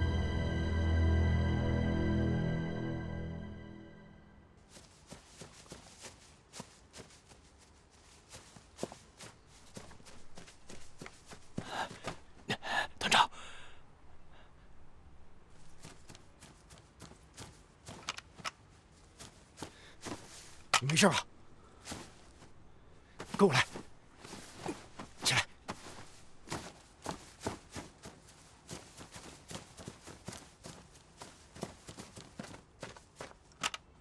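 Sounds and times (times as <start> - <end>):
dry reeds rustling: 4.6 - 12.2, 15.5 - 33.3.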